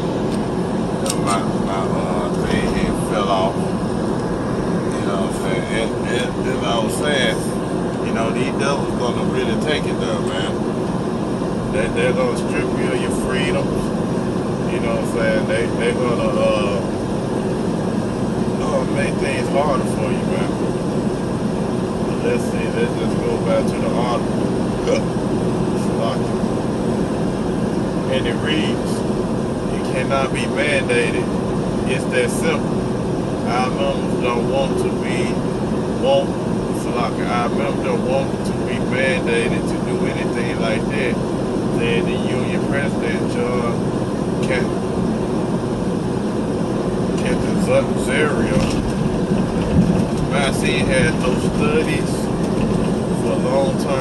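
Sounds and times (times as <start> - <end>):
car road and engine noise: 0.0 - 54.0
indistinct speech: 1.0 - 3.6, 4.9 - 10.6, 11.7 - 13.9, 14.7 - 16.9, 18.6 - 20.6, 22.1 - 25.0, 25.8 - 26.3, 28.1 - 29.0, 29.7 - 31.3, 31.9 - 32.6, 33.5 - 35.4, 36.0 - 41.2, 41.8 - 43.8, 44.4 - 44.8, 47.2 - 48.8, 50.3 - 52.3, 53.2 - 54.0.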